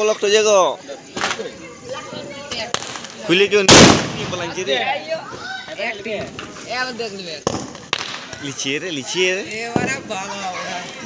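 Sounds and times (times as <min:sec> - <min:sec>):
firecrackers cracking: 0:01.0 - 0:01.8, 0:02.4 - 0:11.0.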